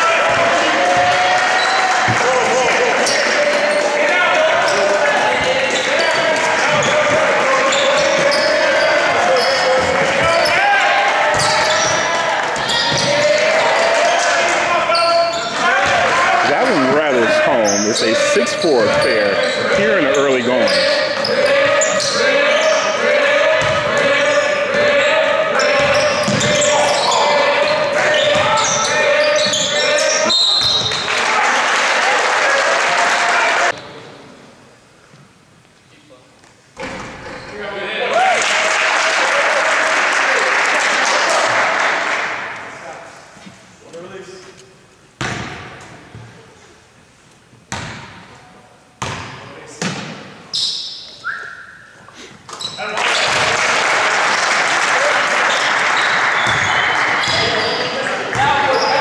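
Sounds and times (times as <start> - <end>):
crowd voices in gym: 0.0 - 59.0
basketball bouncing on hardwood: 23.6 - 24.1, 25.8 - 26.6
short whistle: 50.6 - 51.9.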